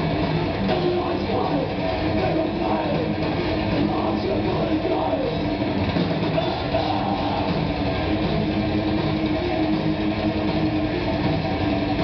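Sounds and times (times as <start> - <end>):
thrash metal band playing live: 0.0 - 12.0.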